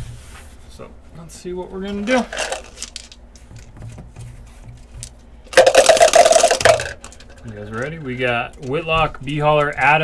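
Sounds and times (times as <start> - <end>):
dice rattling in plastic cup: 2.1 - 3.2, 5.5 - 8.0.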